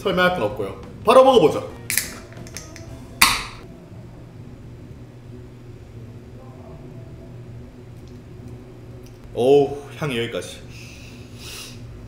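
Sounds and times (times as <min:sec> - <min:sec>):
beer can popping open: 0:01.9 - 0:03.6.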